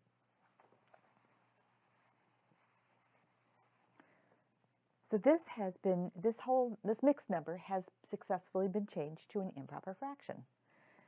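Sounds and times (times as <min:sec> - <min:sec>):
cloth rubbing on whiteboard: 0:00.3 - 0:04.0.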